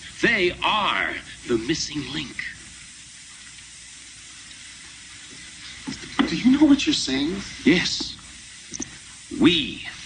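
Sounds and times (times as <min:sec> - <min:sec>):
old film soundtrack hiss: 0:00.0 - 0:10.0.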